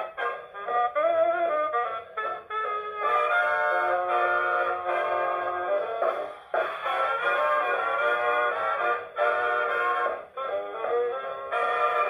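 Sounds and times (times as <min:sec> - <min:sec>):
dance band orchestra on gramophone: 0:00.0 - 0:12.0.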